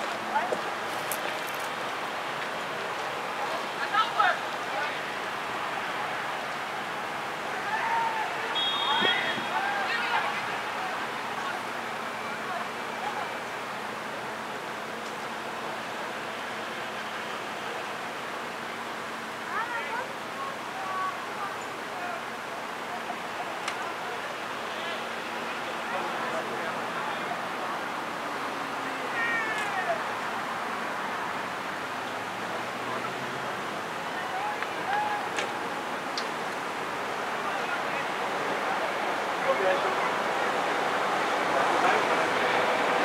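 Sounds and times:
continuous rushing hiss: 0.0 - 43.0.

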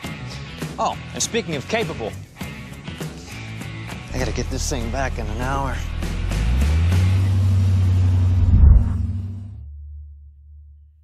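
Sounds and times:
engine rumbling driving past: 6.3 - 9.6.

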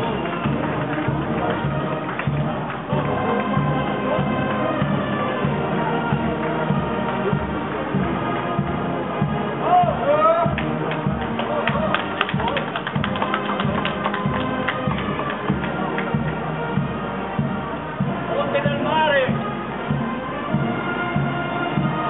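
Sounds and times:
sharp taps or claps: 0.0 - 3.1, 10.5 - 16.4
band music with steady beat: 0.0 - 22.0
crowd voices: 0.0 - 22.0.

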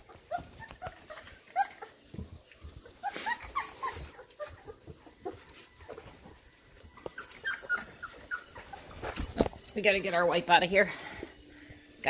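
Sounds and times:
puppies whimpering: 0.0 - 9.6.

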